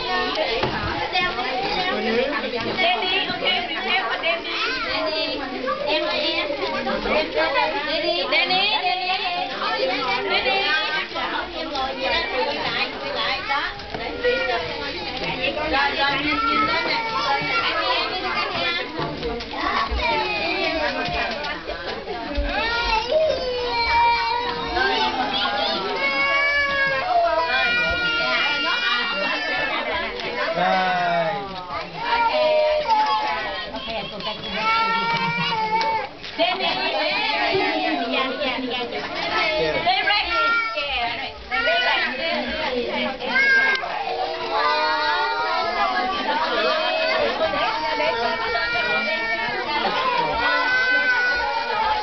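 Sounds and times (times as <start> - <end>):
young children chattering: 0.0 - 52.0.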